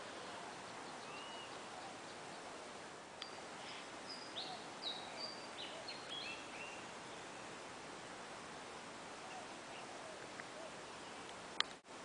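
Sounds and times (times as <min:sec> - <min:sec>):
outdoor background hiss: 0:00.0 - 0:12.0
small birds whistling: 0:00.5 - 0:02.5, 0:03.2 - 0:07.5.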